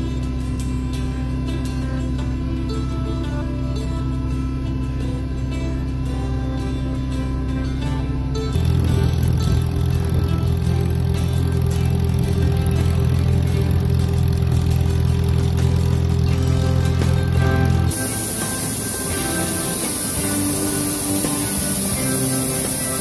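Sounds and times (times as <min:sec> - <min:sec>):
background music: 0:00.0 - 0:23.0
tractor engine rumble: 0:00.0 - 0:23.0.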